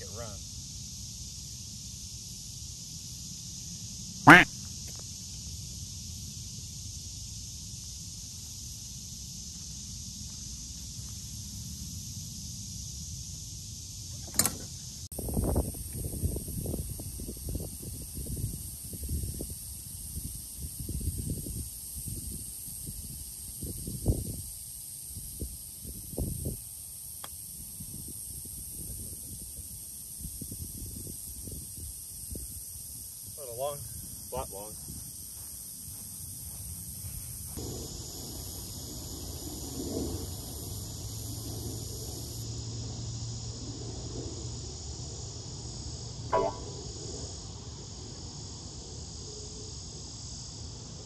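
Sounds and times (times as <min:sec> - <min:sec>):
sharp click: 0:14.2 - 0:14.7, 0:46.3 - 0:46.7.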